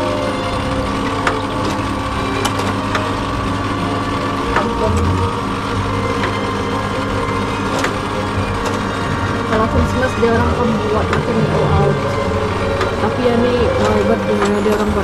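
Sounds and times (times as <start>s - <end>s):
small motors and gears running: 0.0s - 15.0s.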